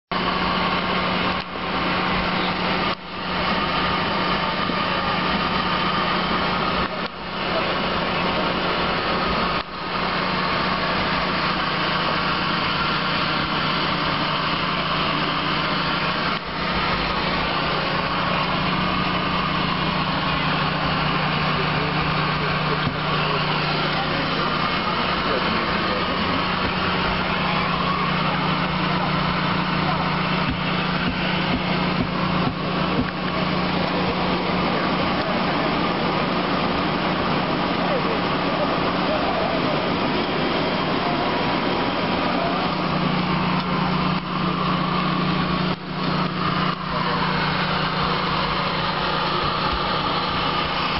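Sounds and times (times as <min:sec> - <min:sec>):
aircraft machinery drone: 0:00.1 - 0:50.9.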